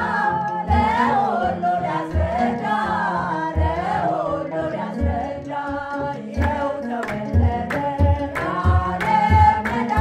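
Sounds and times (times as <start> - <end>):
mixed choir singing a hymn: 0.0 - 10.0.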